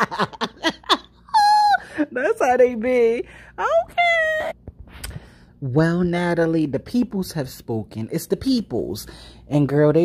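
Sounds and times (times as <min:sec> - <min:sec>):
woman laughing: 0:00.0 - 0:02.4.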